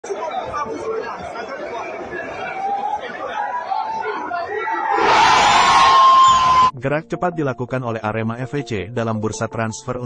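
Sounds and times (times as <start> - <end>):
people chattering and calling out: 0.0 - 5.4.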